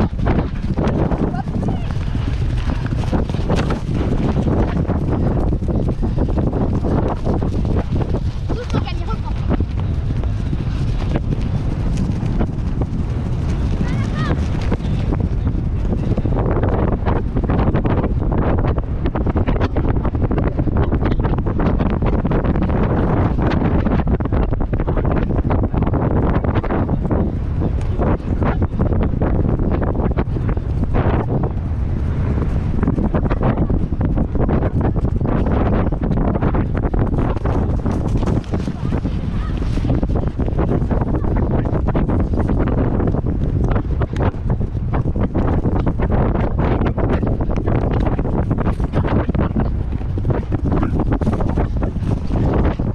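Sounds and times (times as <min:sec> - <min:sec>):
pony hoofbeats: 0:00.0 - 0:16.4
wind buffeting microphone: 0:00.0 - 0:52.9.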